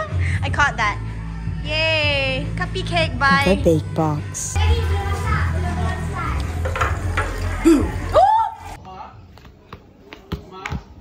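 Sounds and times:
dishes and utensils clinking: 6.4s - 8.2s.

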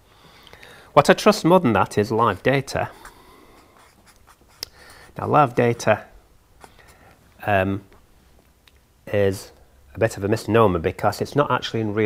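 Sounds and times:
marker scratching on paper: 3.5s - 5.2s.

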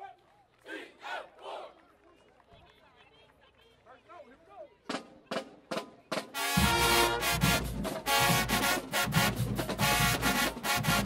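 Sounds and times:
crowd shouting: 0.0s - 1.8s
marching band playing: 4.9s - 11.0s.

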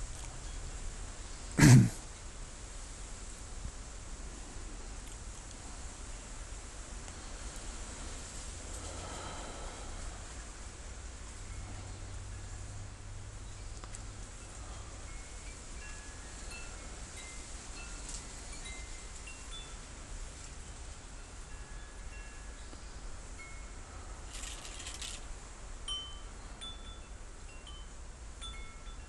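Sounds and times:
brief rustle: 24.3s - 25.3s
chimes tinkling: 25.9s - 29.0s.

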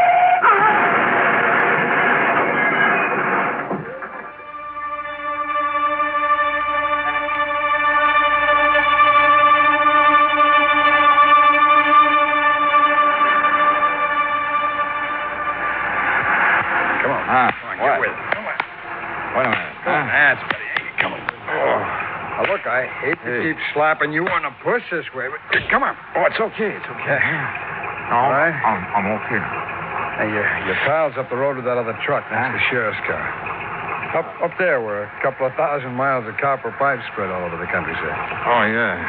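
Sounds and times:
voices: 2.6s - 39.0s
sustained music chord: 4.1s - 20.4s.

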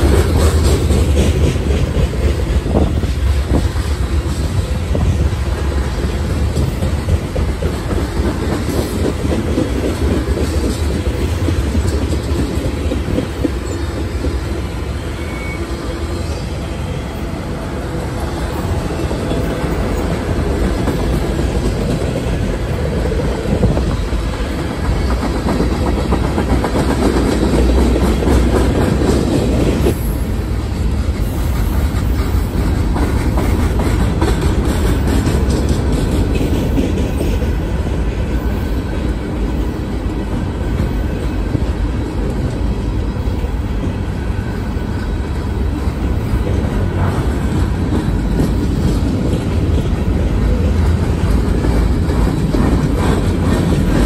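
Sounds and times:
clickety-clack over rail joints: 0.0s - 16.4s, 17.2s - 54.0s
steel wheels rolling on rails: 0.0s - 54.0s.

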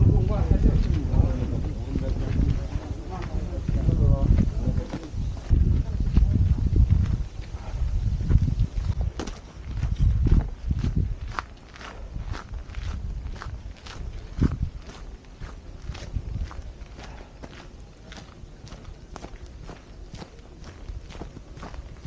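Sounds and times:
footsteps on dirt trail: 0.0s - 22.0s
low rumble on microphone: 0.0s - 22.0s.

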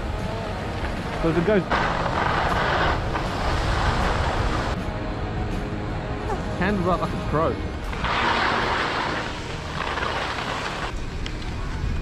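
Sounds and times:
skis sliding on packed snow: 0.8s - 4.8s, 7.9s - 11.0s.

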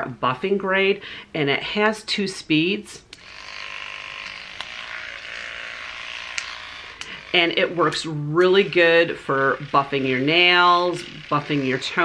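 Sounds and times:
electronic nail file buzzing: 3.1s - 12.0s.

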